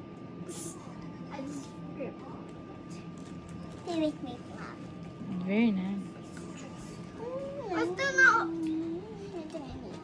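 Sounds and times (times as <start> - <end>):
young child's high-pitched voice: 7.2 - 10.0.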